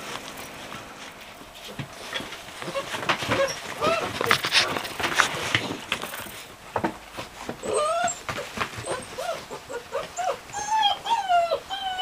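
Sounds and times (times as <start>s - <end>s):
puppies whimpering and whining: 0.2s - 5.9s, 7.4s - 12.0s.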